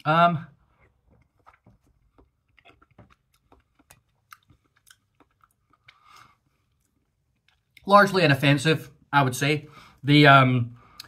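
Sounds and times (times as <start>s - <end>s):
chewing soft food: 0.6s - 7.9s.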